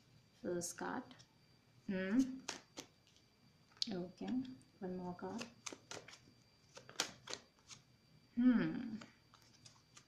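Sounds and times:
playing cards being shuffled: 2.2s - 3.2s, 5.2s - 7.9s, 8.9s - 10.0s
card snaps: 6.8s - 7.8s.

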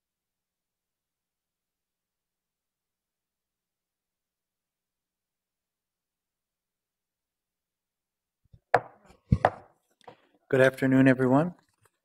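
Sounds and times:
gavel rapping on wood: 8.6s - 9.7s.

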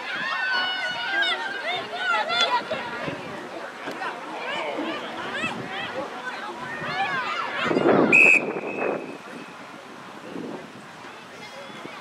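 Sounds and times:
referee whistle blast: 8.1s - 9.2s.

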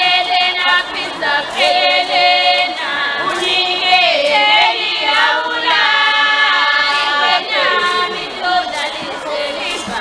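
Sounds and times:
women and girls singing unaccompanied: 0.0s - 10.0s.

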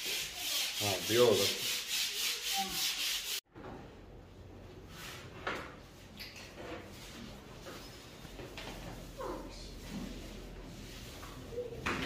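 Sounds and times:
hand sanding a wall: 0.0s - 3.4s.

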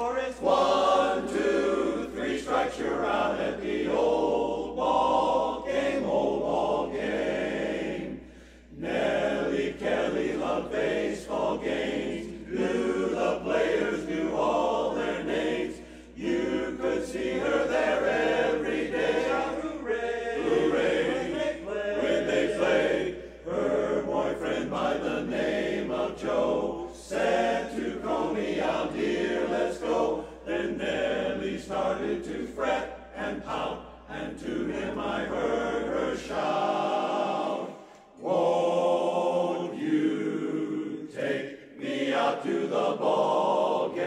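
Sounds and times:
men's chorus singing a cappella: 0.0s - 44.0s.

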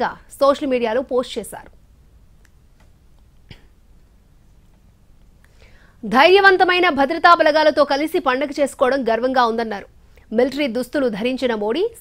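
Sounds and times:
quiet intake of breath: 5.4s - 6.0s.

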